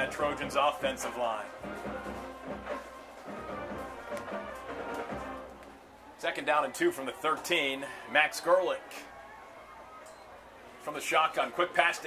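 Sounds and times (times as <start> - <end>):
faint brass band with drums: 0.0 - 8.2.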